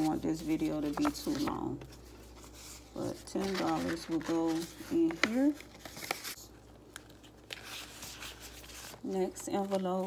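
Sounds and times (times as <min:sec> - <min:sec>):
plastic pouches and paper rustling: 0:00.0 - 0:10.0.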